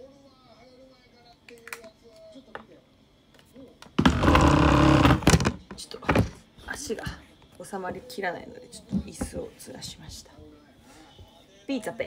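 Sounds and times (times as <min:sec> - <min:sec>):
loud scraping rubbing noise: 0:04.0 - 0:05.6.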